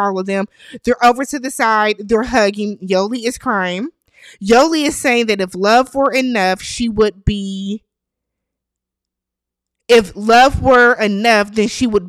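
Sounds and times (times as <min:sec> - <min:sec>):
woman speaking: 0:00.0 - 0:07.8, 0:09.9 - 0:12.0.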